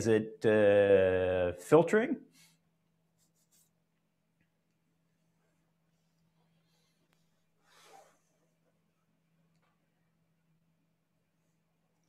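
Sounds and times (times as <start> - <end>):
person speaking: 0.0 - 2.3
faint electrical hum: 0.0 - 12.0.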